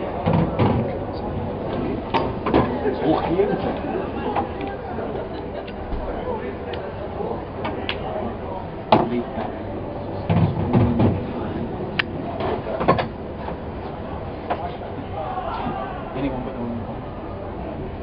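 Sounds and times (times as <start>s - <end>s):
low background voices: 0.0s - 18.0s.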